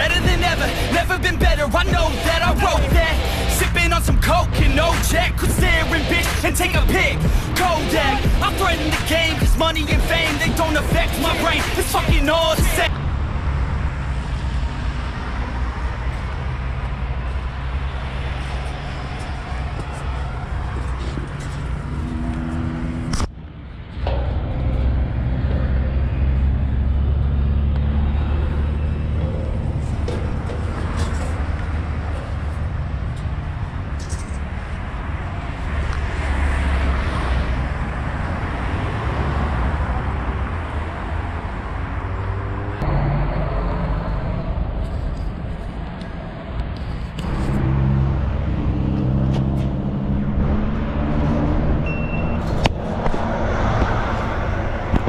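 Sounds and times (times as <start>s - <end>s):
cars passing: 0.0s - 55.0s
steady low traffic rumble: 0.0s - 55.0s.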